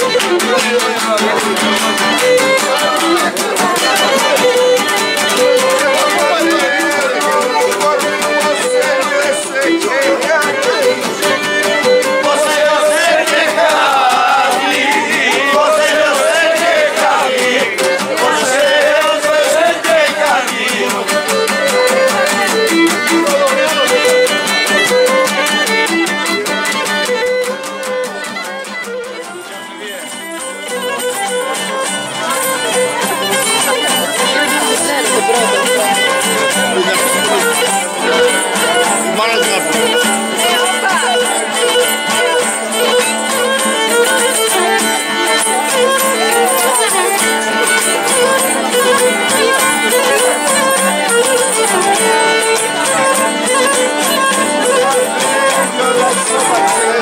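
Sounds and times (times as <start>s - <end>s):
strummed lutes: 0.0s - 57.0s
bowled lyra melody: 19.2s - 57.0s.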